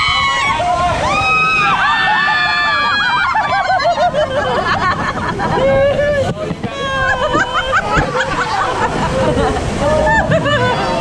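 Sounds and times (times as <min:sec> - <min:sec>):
people laughing and squealing: 0:00.0 - 0:11.0
rushing water: 0:00.0 - 0:11.0.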